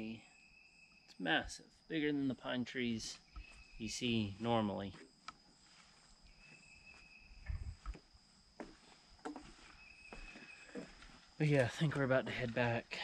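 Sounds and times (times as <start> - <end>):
high insect drone: 0.0 - 13.0.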